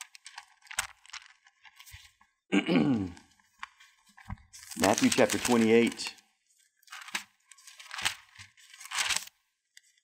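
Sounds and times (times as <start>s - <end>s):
pages rustling: 0.0s - 2.3s, 3.3s - 10.0s.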